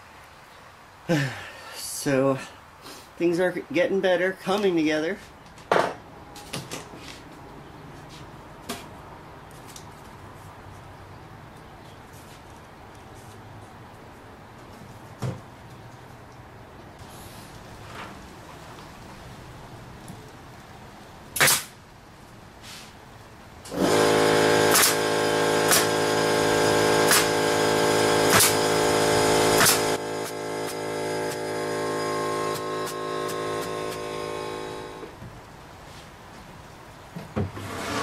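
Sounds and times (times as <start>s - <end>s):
pneumatic stapler shots: 21.4s - 21.8s, 23.7s - 31.5s, 32.4s - 34.2s
air compressor humming: 23.7s - 35.2s.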